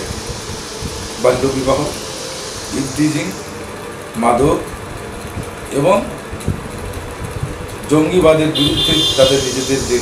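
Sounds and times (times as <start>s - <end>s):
faint hum: 0.0s - 4.8s
man speaking: 1.2s - 2.0s, 2.7s - 3.4s, 8.0s - 10.0s.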